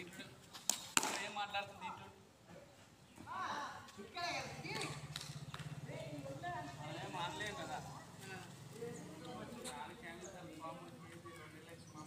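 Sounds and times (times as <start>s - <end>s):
indistinct voices talking: 3.2s - 12.0s.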